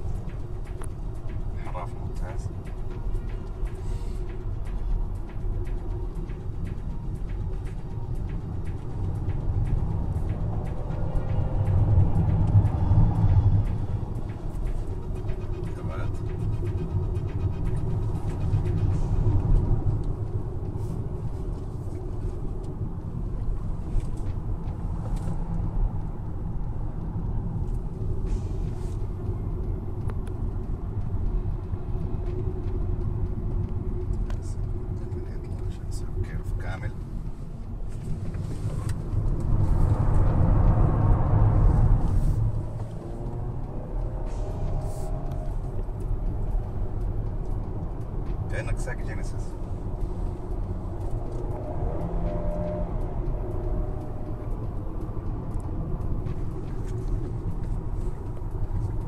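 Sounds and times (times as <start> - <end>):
car engine and road rumble: 0.0 - 59.0.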